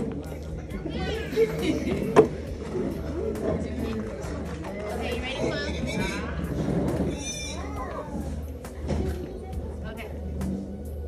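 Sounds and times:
background music: 0.0 - 11.0
shrill squeal: 7.1 - 7.8.

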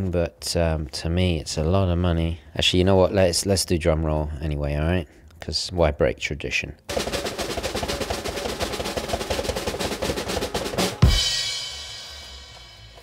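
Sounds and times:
cymbal crash: 6.9 - 13.0
snare drum roll: 6.9 - 13.0.

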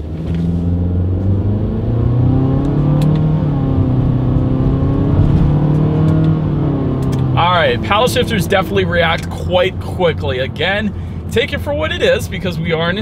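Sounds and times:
car engine accelerating: 0.0 - 13.0.

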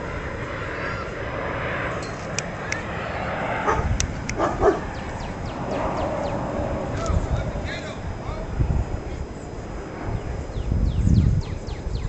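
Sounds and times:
high falling chirps: 4.1 - 6.7.

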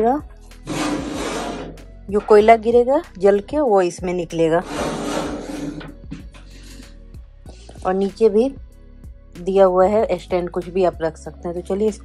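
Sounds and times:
background music: 0.0 - 12.0
metal drawer scraping shut: 0.6 - 1.8, 4.6 - 6.0.

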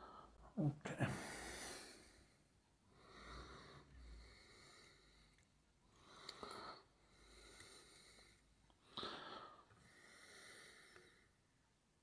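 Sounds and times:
person breathing softly: 0.0 - 11.5.

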